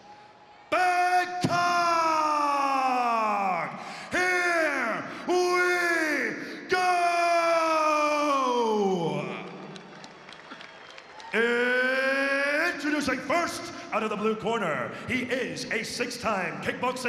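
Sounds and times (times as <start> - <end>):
man announcing in drawn-out calls: 0.7 - 9.5.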